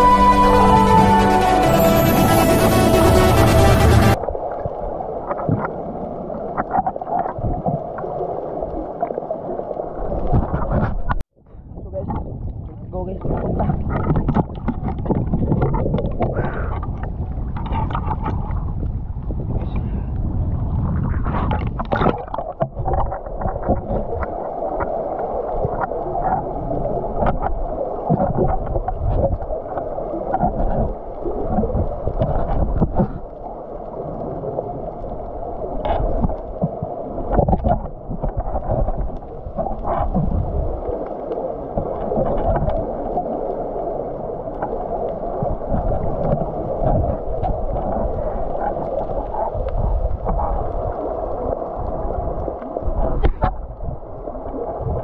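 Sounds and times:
underwater sloshing and gurgling: 4.1 - 55.0
splashes and knocks: 21.4 - 24.9.

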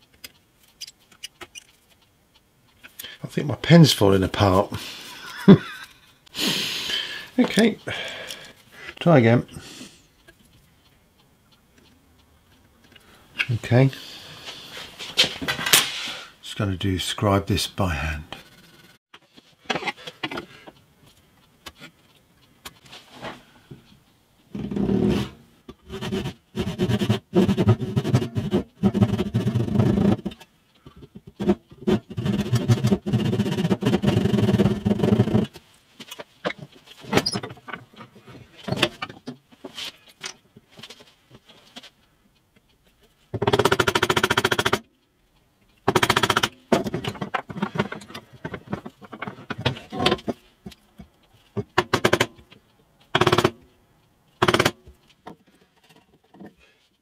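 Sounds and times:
hand saw cutting wood: 24.8 - 30.3, 31.4 - 35.5.

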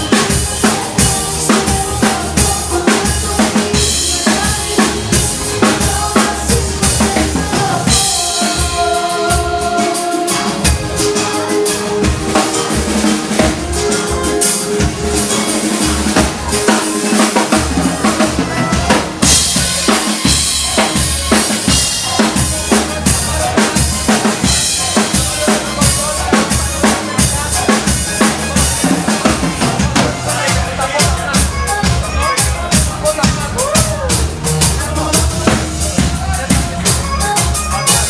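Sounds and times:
drum kit beat: 0.0 - 38.0
live band playing pop: 0.0 - 38.0.

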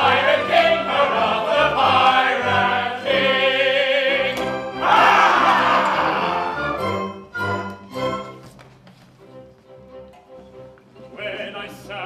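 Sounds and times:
chorus singing: 0.0 - 7.0
theatre orchestra with strings: 0.0 - 12.0.

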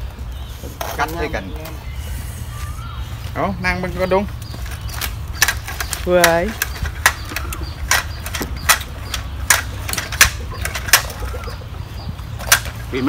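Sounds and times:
sharp taps and clicks: 4.4 - 11.4.

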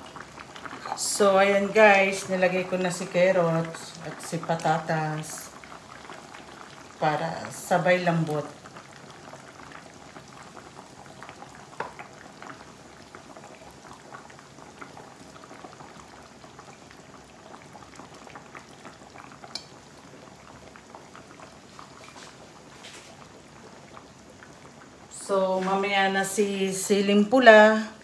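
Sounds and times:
stew bubbling in a frying pan: 0.0 - 28.0.

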